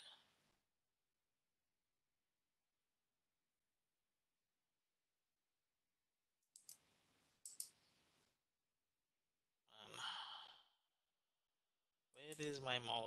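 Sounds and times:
faint clicks: 6.4s - 6.8s
person sighing: 9.8s - 10.7s.

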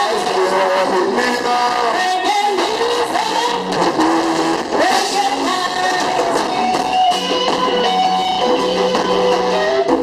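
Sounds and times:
electric guitar lead bending notes: 0.0s - 10.0s
live band playing: 0.0s - 10.0s.

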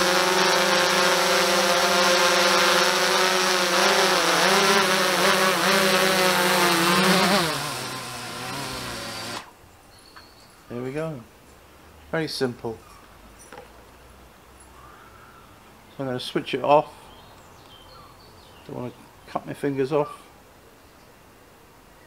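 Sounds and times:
drone propellers whining: 0.0s - 9.5s.

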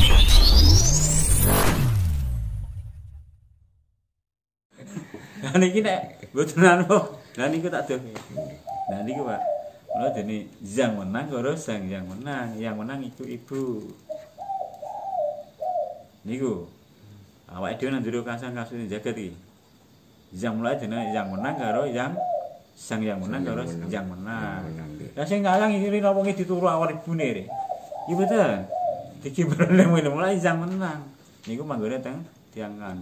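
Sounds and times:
dove cooing: 8.2s - 10.4s, 14.0s - 16.2s, 20.9s - 25.2s, 27.4s - 29.2s.

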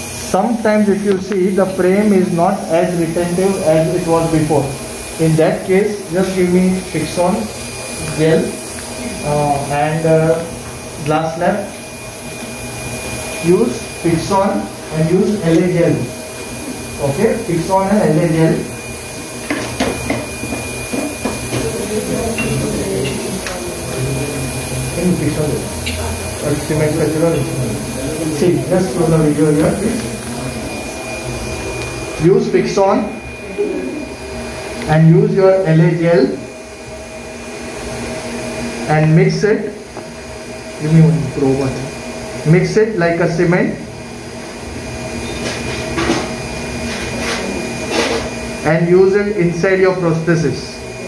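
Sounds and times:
dental equipment hissing: 0.0s - 51.0s
steady machine hum: 0.0s - 51.0s
thin high whine: 0.0s - 51.0s.

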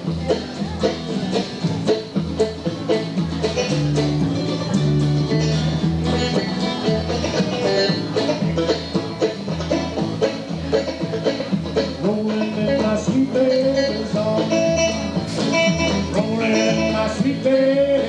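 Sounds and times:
guitars picking melody: 0.0s - 18.0s
upright bass low notes: 0.0s - 18.0s.

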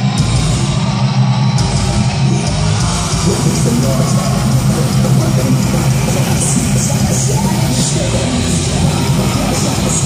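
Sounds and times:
live heavy metal band: 0.0s - 10.0s.

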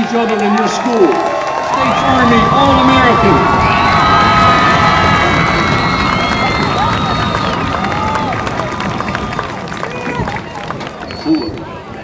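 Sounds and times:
crowd cheering and clapping: 0.0s - 12.0s.

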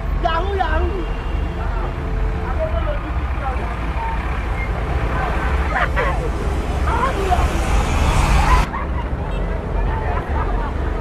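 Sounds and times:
traffic and motorcycle engines: 0.0s - 11.0s.

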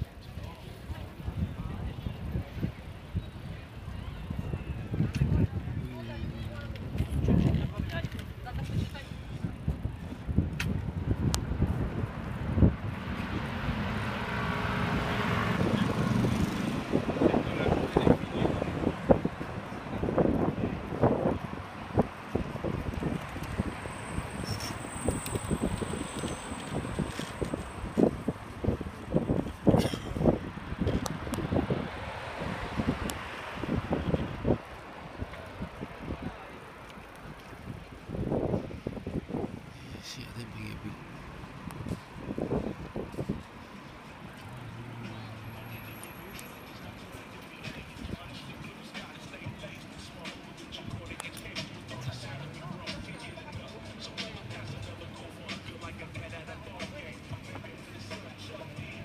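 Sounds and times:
passers-by voices: 0.0s - 59.0s
road traffic: 0.0s - 59.0s.

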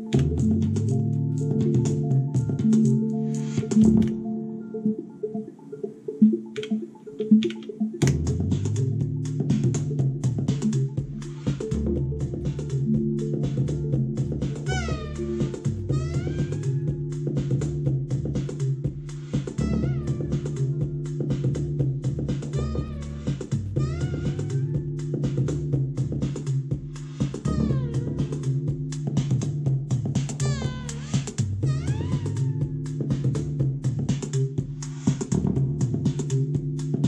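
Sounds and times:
drum machine beat: 0.0s - 4.2s, 4.9s - 37.0s
low synth bass notes: 0.0s - 5.1s, 7.8s - 37.0s
synth note sliding down: 14.6s - 17.1s.

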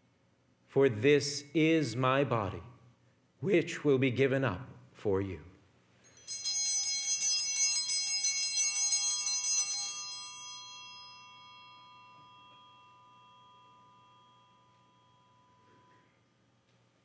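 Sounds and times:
altar bells ringing: 6.0s - 16.5s.

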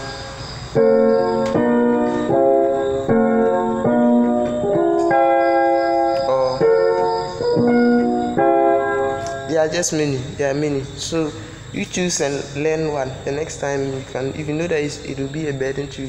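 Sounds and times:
electronic keyboard piano chords: 0.0s - 11.2s.

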